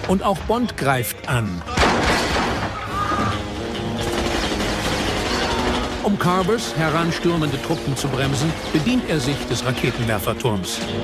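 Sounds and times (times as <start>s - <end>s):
orchestral action film score: 2.4s - 11.0s
automatic gunfire: 4.0s - 6.1s.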